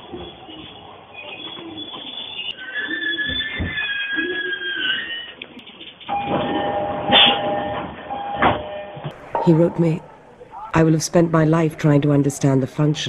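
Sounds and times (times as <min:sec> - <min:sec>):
train wheels squealing: 0:00.2 - 0:05.4.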